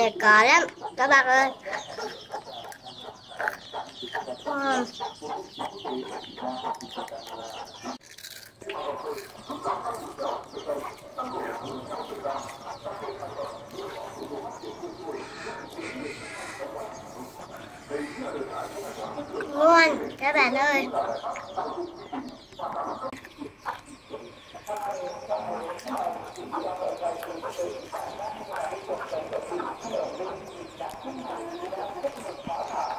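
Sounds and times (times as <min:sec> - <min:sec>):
chickens clucking: 0:00.0 - 0:32.9.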